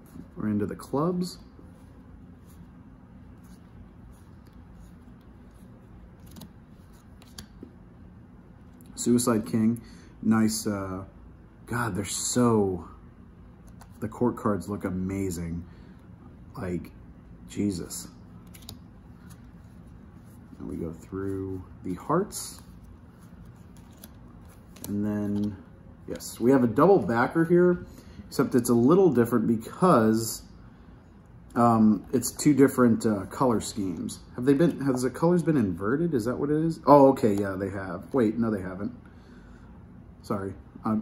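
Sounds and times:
low steady hum: 0.0 - 41.0
playing cards sliding and snapping: 3.3 - 7.8, 13.6 - 14.0, 18.4 - 21.6, 22.3 - 27.1.

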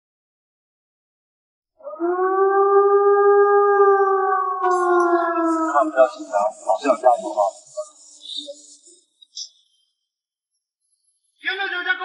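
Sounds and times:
siren wailing: 1.8 - 7.4.

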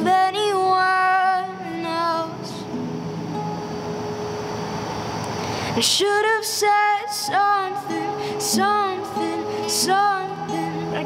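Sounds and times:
acoustic guitar playing: 0.0 - 11.0
faint hiss: 0.0 - 11.0.

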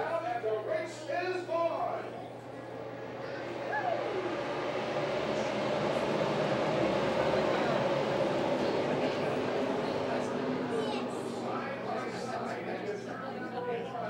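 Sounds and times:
race cars rumbling past: 2.0 - 14.0.

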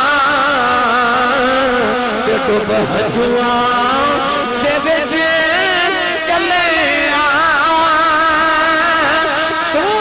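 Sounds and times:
man singing through microphone: 0.0 - 10.0.

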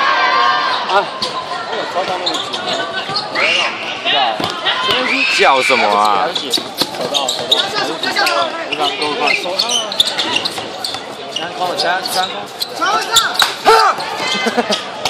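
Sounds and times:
chatter of people: 0.0 - 15.0
basketball bouncing on court: 4.4 - 5.1.

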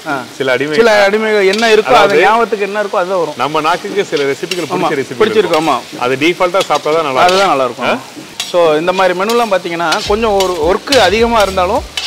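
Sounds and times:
man talking: 0.0 - 12.0
oil frying sizzle: 0.0 - 12.0.

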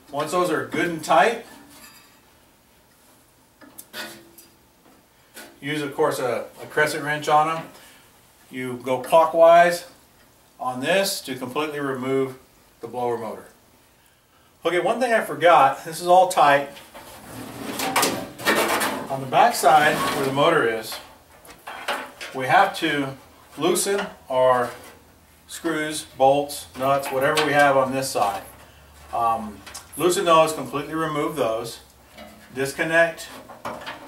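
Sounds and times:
sheet metal scraping and knocking: 16.9 - 21.0.

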